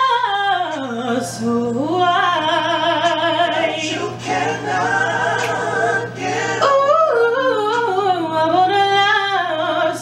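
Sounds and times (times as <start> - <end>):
woman singing: 0.0 - 4.2, 6.6 - 10.0
backing track: 2.0 - 8.1.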